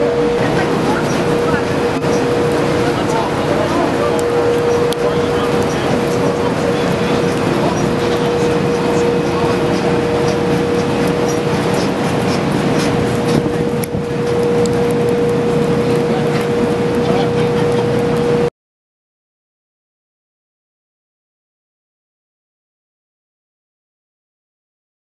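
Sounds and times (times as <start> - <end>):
drilling rig machinery noise: 0.0 - 18.5
mid-pitched machine whine: 0.0 - 18.5.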